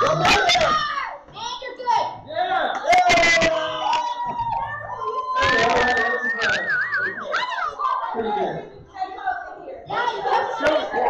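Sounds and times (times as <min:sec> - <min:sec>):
children shouting: 0:02.8 - 0:08.6.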